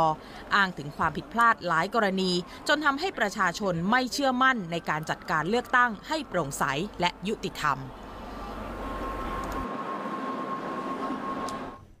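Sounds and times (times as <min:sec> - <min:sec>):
faint high whine: 0:01.8 - 0:12.0.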